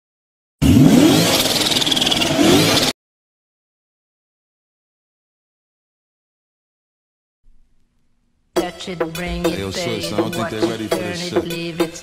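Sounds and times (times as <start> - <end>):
car engine revving: 0.6 - 2.9.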